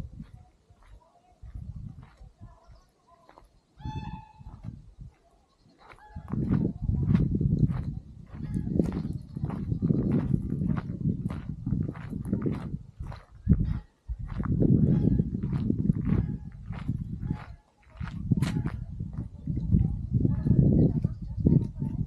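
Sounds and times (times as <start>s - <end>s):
footsteps on dirt path: 0.0s - 22.0s
wind buffeting microphone: 0.0s - 22.0s.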